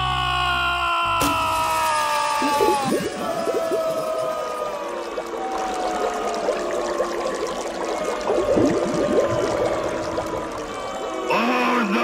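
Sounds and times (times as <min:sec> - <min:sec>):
bubble blips: 0:02.4 - 0:04.2, 0:05.6 - 0:10.6.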